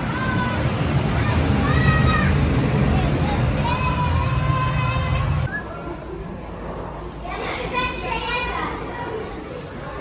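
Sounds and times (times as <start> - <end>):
young child squealing: 1.4 - 2.3.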